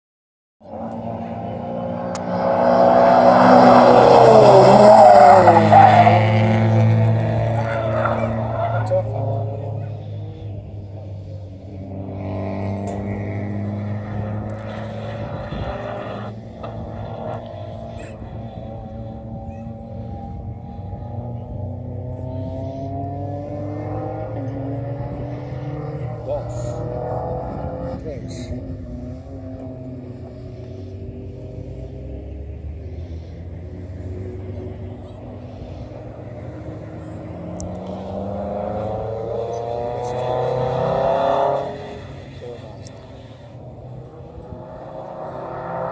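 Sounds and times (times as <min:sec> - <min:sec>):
distant sports car engine accelerating: 0:00.6 - 0:45.9.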